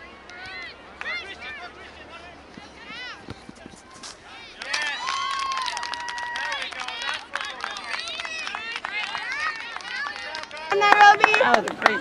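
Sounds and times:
children shouting and calling: 0:08.1 - 0:11.2.

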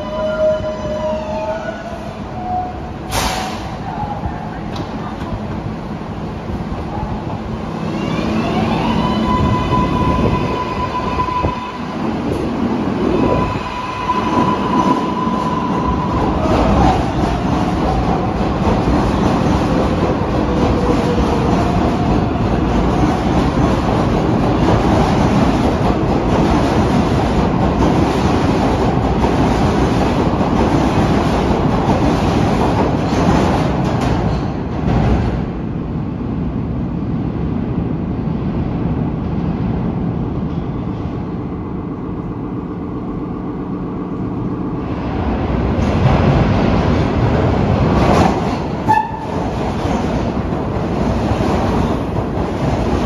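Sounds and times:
train wheels rumbling and clattering: 0:00.0 - 0:53.0.

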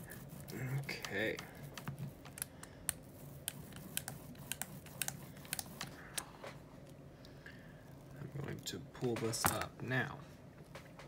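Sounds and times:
paint roller clicking over stencil: 0:03.4 - 0:05.9.

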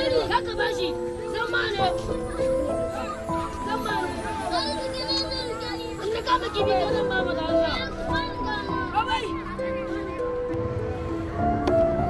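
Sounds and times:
background music with held notes: 0:00.0 - 0:12.0
children calling and chattering: 0:00.0 - 0:12.0.

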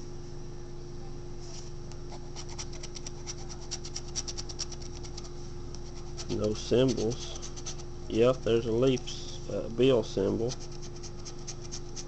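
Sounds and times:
lottery ticket being scratched: 0:02.1 - 0:09.4, 0:10.2 - 0:12.0.

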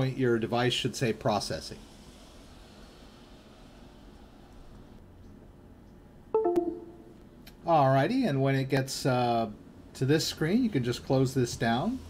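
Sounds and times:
two-note electronic chime: 0:06.4 - 0:07.2.

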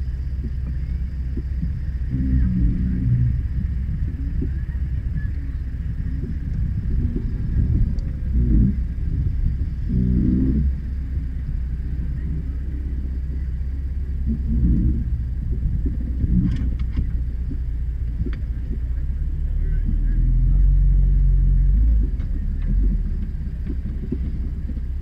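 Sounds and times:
engine rumbling at low revs: 0:00.0 - 0:25.0.

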